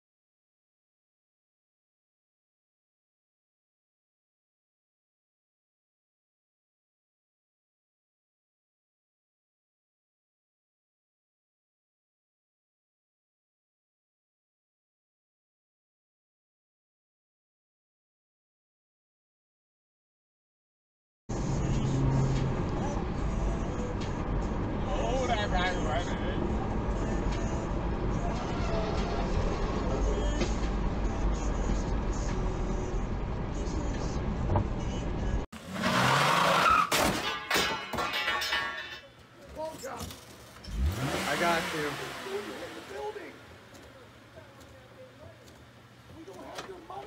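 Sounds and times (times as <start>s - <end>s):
indistinct voices: 21.3s - 35.4s
car road and engine rumble: 21.3s - 36.9s, 39.2s - 47.0s.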